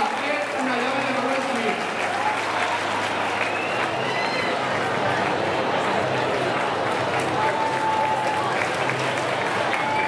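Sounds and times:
audience applauding: 0.0s - 10.0s
crowd voices: 0.0s - 10.0s.

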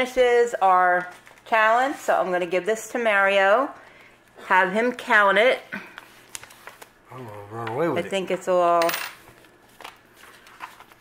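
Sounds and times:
paper cash rustling: 6.0s - 6.9s, 8.9s - 11.0s.

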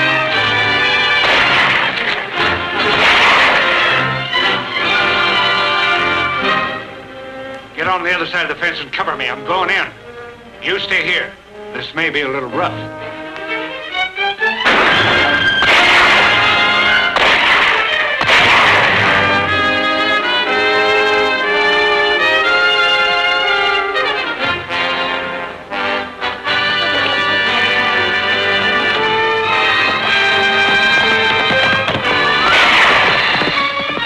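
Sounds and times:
orchestral action music: 0.0s - 34.0s
loud crashes: 1.1s - 5.3s, 14.6s - 19.9s, 28.4s - 34.0s.

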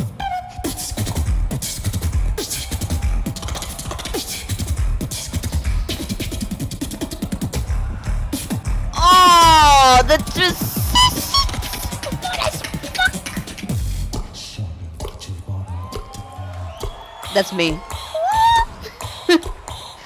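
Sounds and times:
beatbox high chirps: 0.0s - 7.7s, 8.4s - 15.4s, 16.8s - 20.0s
beatbox bass kicks and clicks: 0.1s - 9.0s, 10.1s - 16.2s
beatbox tone sliding down: 9.0s - 14.4s, 18.1s - 19.4s.

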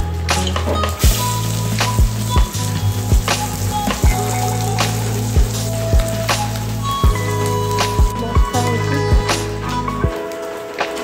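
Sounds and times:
background music with deep beats: 0.0s - 11.0s
onions sizzling in hot oil: 0.2s - 10.6s.

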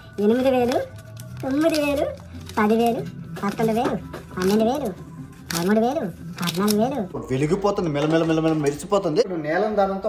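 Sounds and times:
banknotes rustling: 0.2s - 7.1s.

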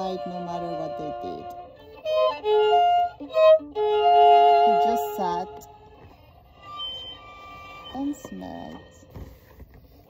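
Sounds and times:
solo violin: 0.0s - 10.0s.

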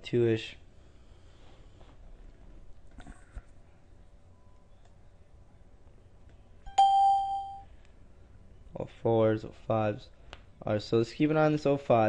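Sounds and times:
electronic alert chime: 6.7s - 7.6s.

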